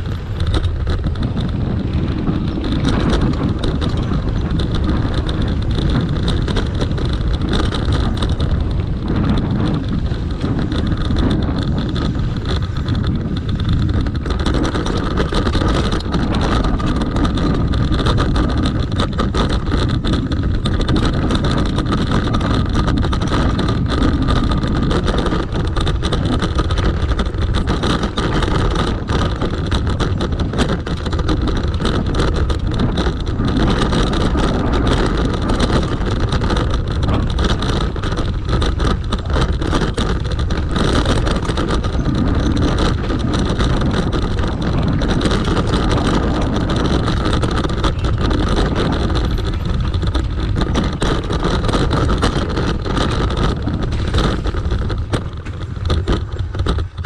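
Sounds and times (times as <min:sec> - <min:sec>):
bike rattling over rocks: 0:00.0 - 0:57.0
wind on microphone: 0:00.0 - 0:57.0.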